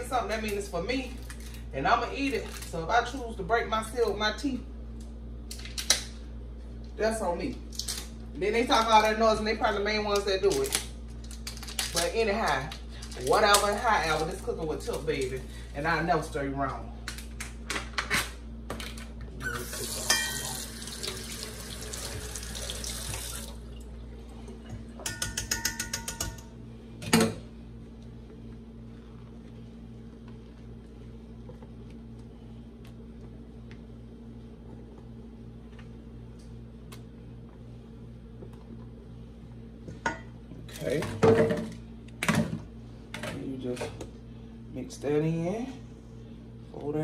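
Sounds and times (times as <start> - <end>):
steady low hum: 0.0 - 47.0
kitchen tap running: 19.4 - 23.9.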